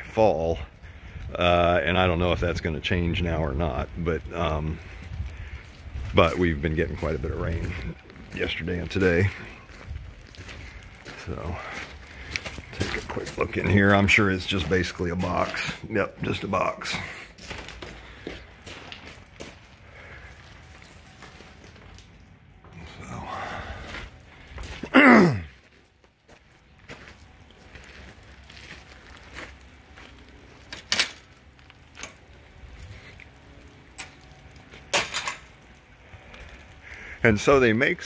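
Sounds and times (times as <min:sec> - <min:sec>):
footsteps walking: 0:04.8 - 0:34.9.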